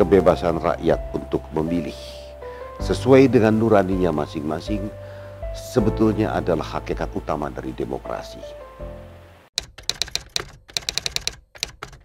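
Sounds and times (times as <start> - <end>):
keyboard typing clicks: 9.6 - 12.0.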